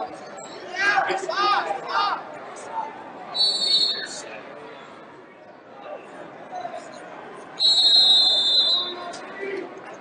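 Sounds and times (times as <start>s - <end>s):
background voices in a gym: 0.0s - 10.0s
referee's whistle long blast: 7.6s - 9.0s.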